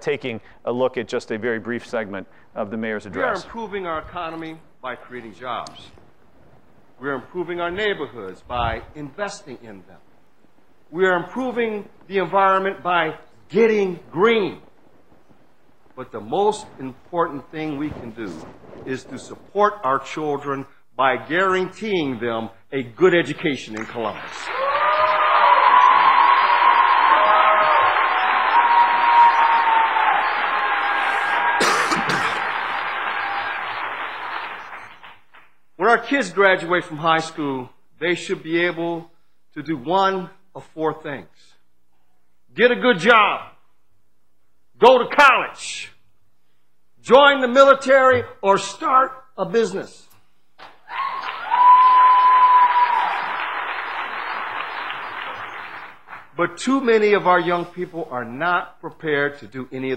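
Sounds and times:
audience applauding and cheering: 23.8s - 35.6s, 50.6s - 56.4s.

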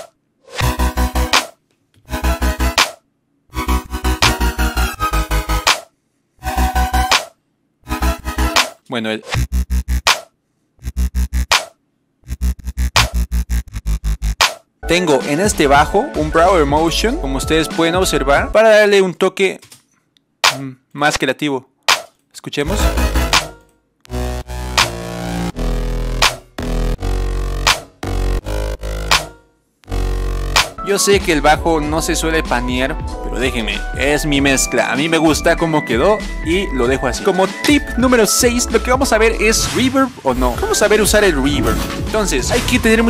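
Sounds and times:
electronic beat: 3.7s - 5.8s, 10.8s - 11.6s, 12.3s - 18.6s, 22.7s - 39.3s, 40.4s - 43.0s
sustained bass: 9.4s - 10.1s, 10.8s - 11.5s, 12.2s - 18.5s, 22.7s - 34.7s, 35.3s - 37.2s, 37.8s - 39.7s, 40.3s - 43.0s.

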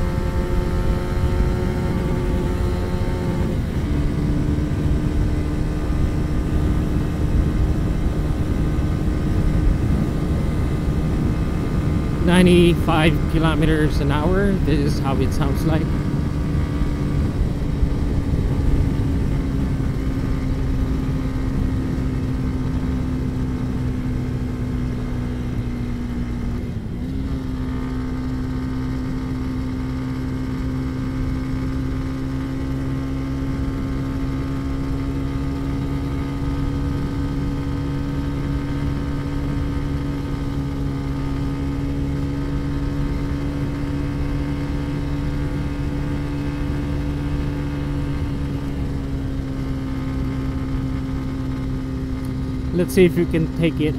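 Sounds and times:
motorcycle engine cruising: 0.0s - 53.9s
road rumble: 0.0s - 53.9s
wind: 0.0s - 53.9s.

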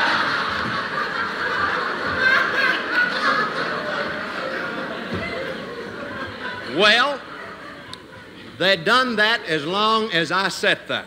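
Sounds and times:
audience laughing: 0.0s - 9.8s.

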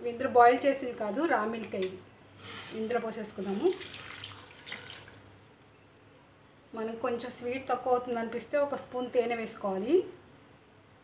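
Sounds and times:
milk splashing into blender jar: 3.7s - 5.3s.

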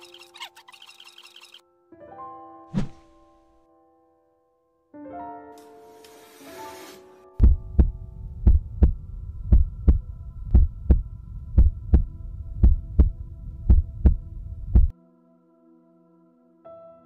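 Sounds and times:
heartbeat double thump: 7.4s - 14.9s
low hum: 7.4s - 14.9s.

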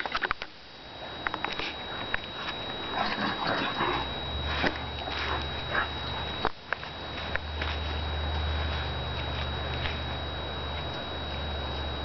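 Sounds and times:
low steady rumble: 0.0s - 12.0s
dogs snuffling and scuffling: 1.1s - 12.0s.

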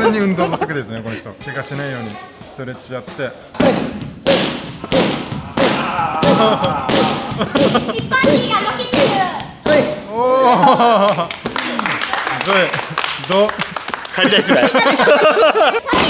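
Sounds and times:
kicks smacking a kick pad: 3.6s - 10.0s.

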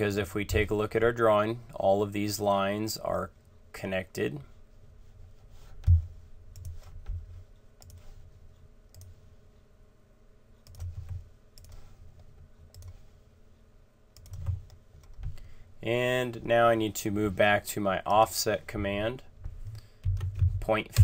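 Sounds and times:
faint steady hum: 0.0s - 21.0s
soft low thumps: 5.8s - 6.3s, 19.4s - 21.0s
computer mouse clicks: 6.5s - 7.2s, 7.8s - 8.1s, 8.9s - 9.1s, 10.6s - 13.0s, 14.2s - 15.4s.

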